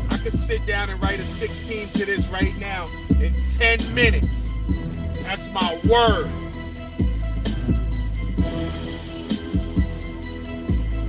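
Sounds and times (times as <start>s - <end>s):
rapping: 0.0s - 4.6s, 5.2s - 6.4s
hip hop beat with deep bass: 0.0s - 11.0s.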